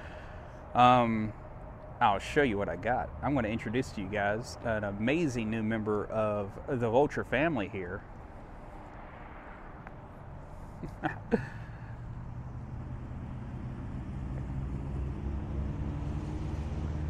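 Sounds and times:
vehicle engine idling: 0.0s - 9.0s, 9.6s - 16.8s.

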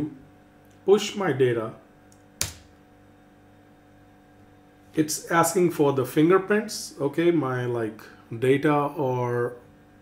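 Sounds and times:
faint steady hum: 0.0s - 10.0s
keyboard keystroke: 2.1s - 2.8s.

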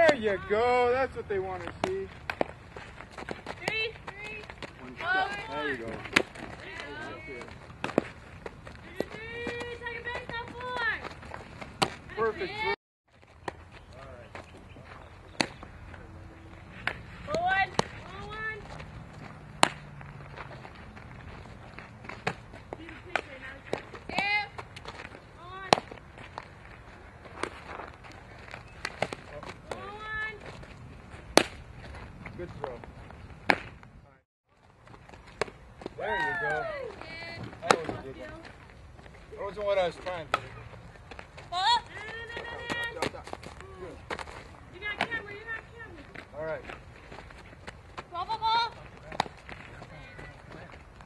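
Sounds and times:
softball hit by bat: 15.4s - 15.6s, 19.5s - 19.9s, 31.3s - 31.6s, 37.4s - 38.0s
ball snapping into gloves: 19.6s - 19.9s
people shouting calls: 36.0s - 37.3s.

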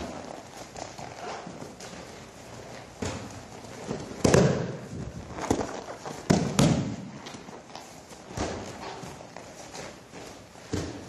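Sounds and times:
feet pounding on mat: 0.0s - 11.0s
bodies thudding onto mats: 2.9s - 7.2s, 8.1s - 11.0s.

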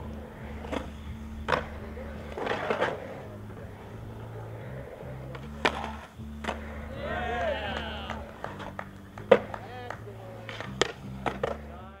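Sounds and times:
skateboard clacking on concrete: 0.0s - 12.0s
skateboard wheels rolling on concrete: 0.0s - 12.0s.

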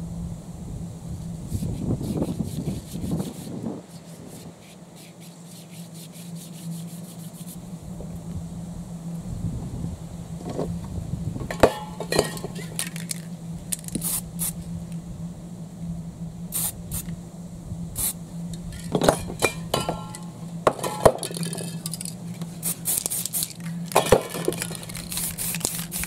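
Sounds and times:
steady low hum: 0.0s - 26.0s
cans and tools clinking: 11.5s - 14.0s, 18.7s - 22.2s, 22.9s - 26.0s
spray-paint cans hissing: 11.6s - 14.6s, 16.5s - 17.2s, 18.0s - 18.2s, 21.3s - 26.0s.

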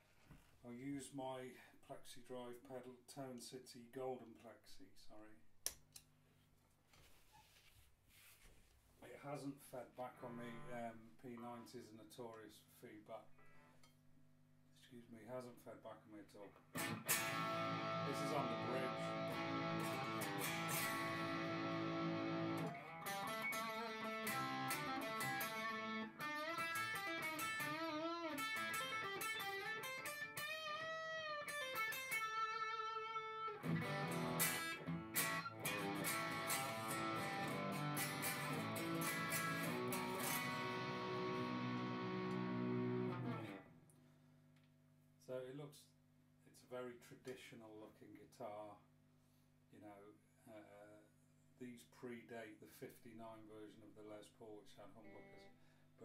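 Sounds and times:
overdriven electric guitar: 16.7s - 43.6s.

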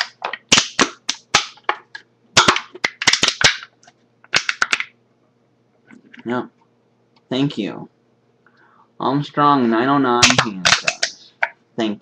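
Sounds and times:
soda can being crushed: 0.0s - 3.7s, 4.3s - 4.9s, 10.2s - 11.5s.

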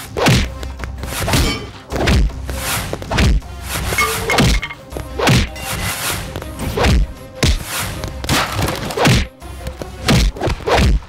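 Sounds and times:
background music: 0.0s - 11.0s
heavy punch whacks and thuds: 0.2s - 0.5s, 1.2s - 2.4s, 3.1s - 3.4s, 5.3s - 5.5s, 6.8s - 7.7s, 8.3s - 9.3s, 10.1s - 11.0s.

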